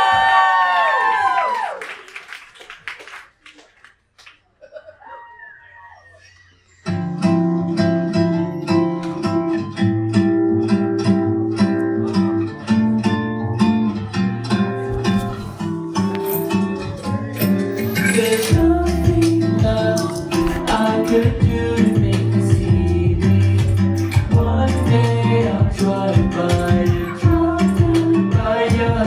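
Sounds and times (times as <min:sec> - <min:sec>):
backing track with plucked guitar: 0:06.8 - 0:29.0
person singing into a microphone: 0:16.8 - 0:29.0.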